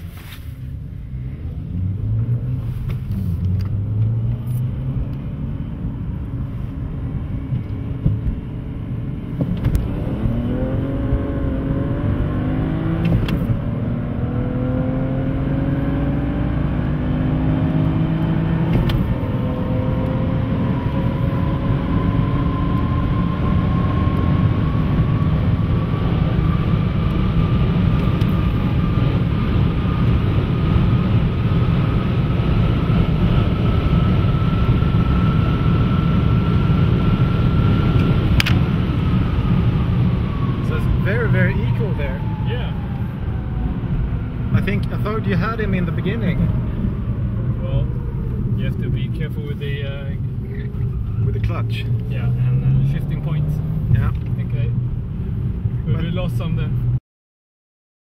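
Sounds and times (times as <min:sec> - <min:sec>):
car engine accelerating: 0:00.0 - 0:57.0
road and wind noise: 0:00.0 - 0:57.0.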